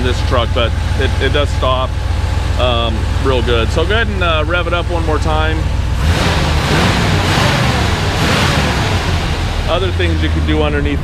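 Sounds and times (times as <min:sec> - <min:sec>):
engine revving: 0:00.0 - 0:11.0.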